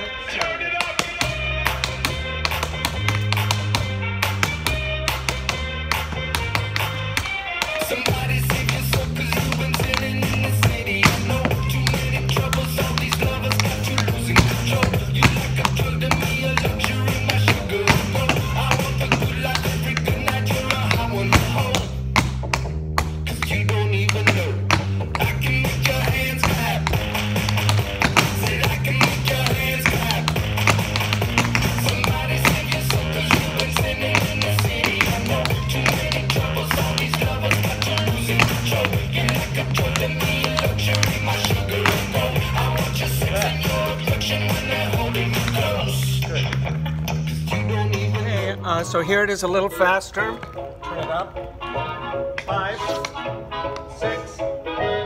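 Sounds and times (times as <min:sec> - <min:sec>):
recorded music with bass line: 0:00.0 - 0:55.0
tap shoes on wooden board: 0:00.3 - 0:43.6.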